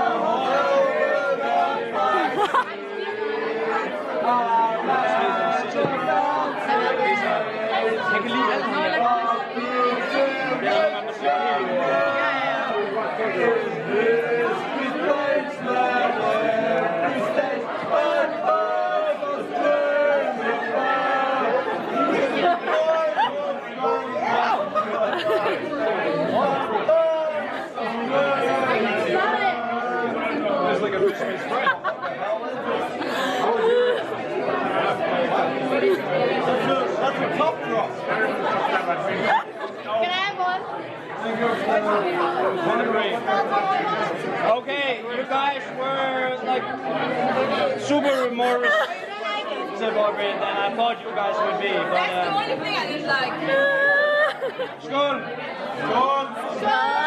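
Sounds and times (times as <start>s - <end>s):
crowd chattering: 0.0s - 57.0s.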